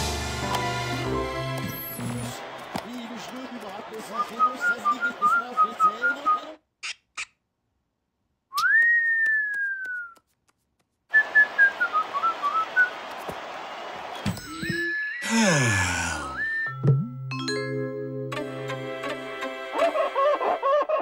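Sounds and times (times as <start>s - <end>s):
cartoon whistling: 8.6s - 10.2s, 16.2s - 16.8s.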